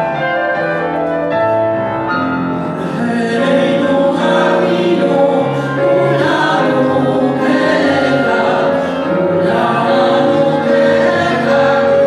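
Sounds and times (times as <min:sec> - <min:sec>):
instrumental accompaniment: 0:00.0 - 0:12.0
women singing in harmony: 0:02.8 - 0:12.0.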